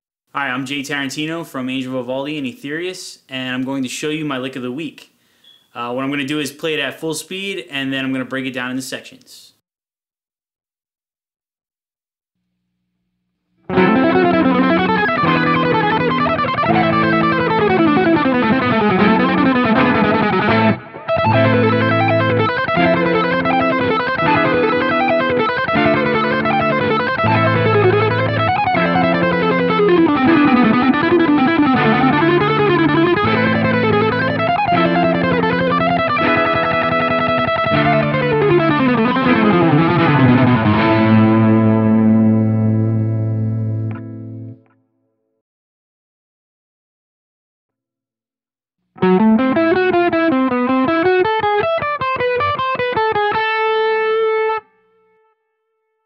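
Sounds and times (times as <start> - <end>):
sustained backing chords: 13.7 - 44.6
fast electric guitar runs: 13.8 - 41.9.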